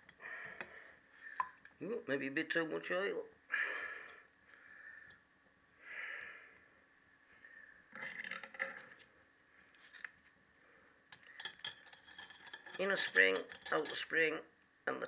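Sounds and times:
steel parts scraping and clinking: 11.2 - 14.2.

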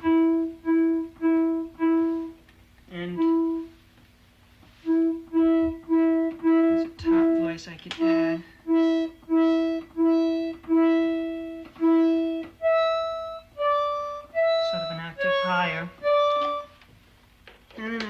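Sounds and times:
synthesiser test notes: 0.0 - 3.8, 4.8 - 16.8.

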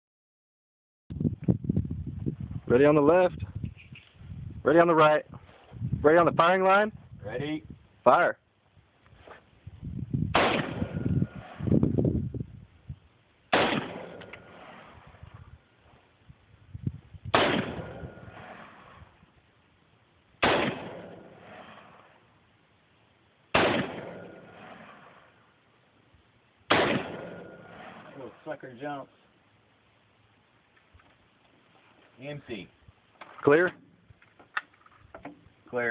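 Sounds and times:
pistol gunshots with echo: 10.3 - 11.7, 13.5 - 15.1, 17.3 - 19.0, 20.4 - 22.2, 23.5 - 25.2, 26.7 - 28.4.

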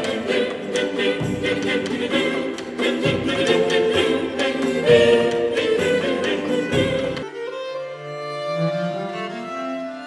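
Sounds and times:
choir singing: 0.0 - 7.3.

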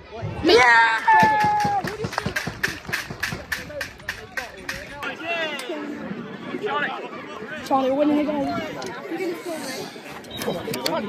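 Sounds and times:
rapid sharp slaps: 1.2 - 4.9.

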